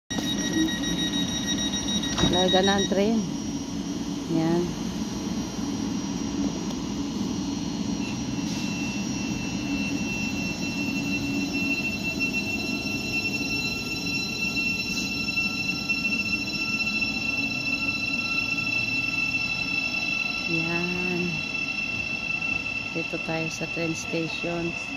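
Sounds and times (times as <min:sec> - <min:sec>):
electric train rumbling: 0:00.1 - 0:24.9
high-pitched electrical whines: 0:00.1 - 0:24.9.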